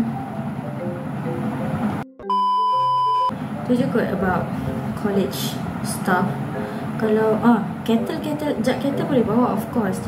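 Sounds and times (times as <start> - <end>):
background music with scattered notes: 0.0 - 10.0.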